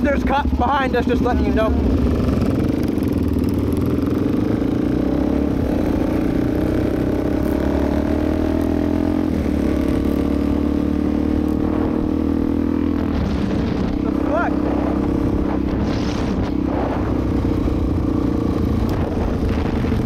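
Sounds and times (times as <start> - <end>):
motorcycle engine accelerating: 0.0 - 20.0
wind rumble on microphone: 11.5 - 20.0.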